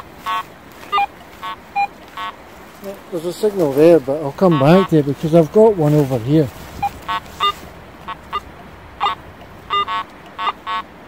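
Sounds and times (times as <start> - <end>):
metal detector buzzy beeps: 0.0 - 2.4, 6.8 - 10.9.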